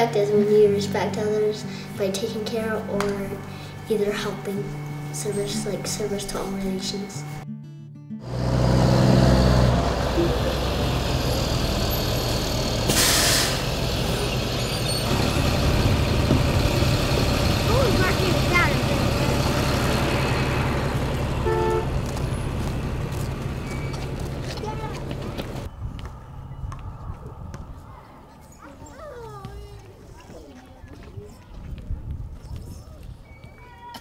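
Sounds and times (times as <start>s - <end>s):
children chattering: 0.0s - 7.4s, 16.6s - 21.1s, 24.0s - 25.7s, 27.0s - 34.0s
bus engine idling: 8.2s - 29.7s
air brake hiss: 12.9s - 13.7s.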